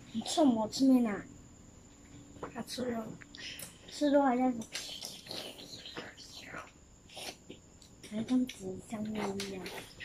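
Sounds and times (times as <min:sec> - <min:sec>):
person whispering: 0:02.8 - 0:07.4.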